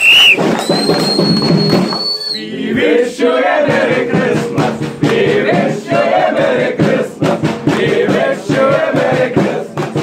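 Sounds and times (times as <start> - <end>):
whistle blasts: 0.0 - 2.6
crowd noise: 0.0 - 10.0.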